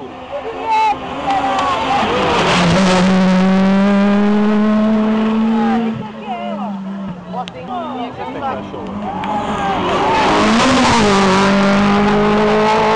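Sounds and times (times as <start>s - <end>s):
rally car engine passing at speed: 0.9s - 7.4s, 8.2s - 12.9s.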